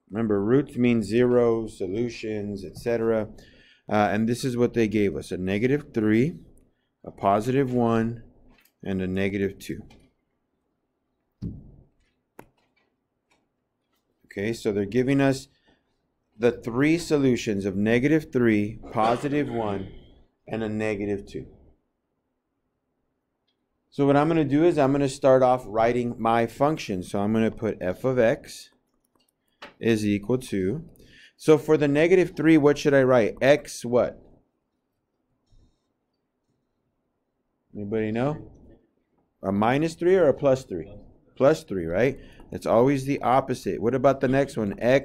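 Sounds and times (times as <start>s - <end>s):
man speaking: 0.0s - 10.0s, 14.3s - 15.5s, 16.4s - 21.6s, 23.9s - 28.8s, 29.7s - 34.3s, 37.7s - 38.7s, 39.4s - 45.0s.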